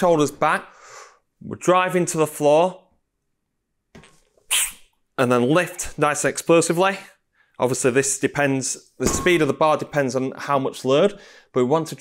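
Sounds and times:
man's sharp hissy breath: 0.7s - 1.2s.

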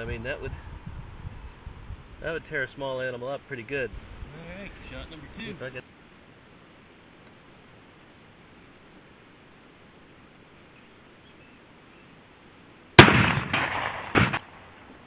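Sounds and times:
rifle shot: 13.0s - 14.8s.

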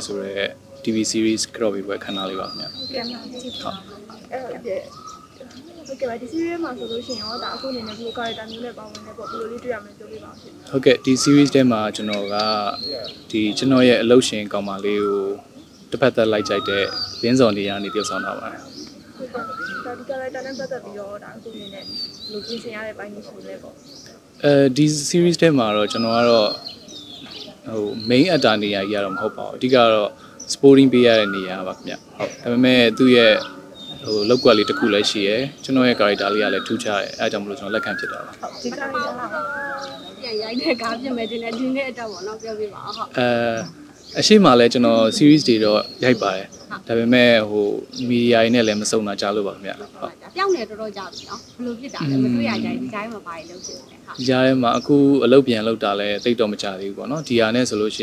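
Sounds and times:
man speaking: 0.0s - 2.8s, 10.7s - 18.7s, 24.4s - 26.6s, 27.6s - 39.1s, 43.1s - 50.2s, 52.0s - 53.0s, 54.2s - 58.0s
bird calling: 0.0s - 58.0s.

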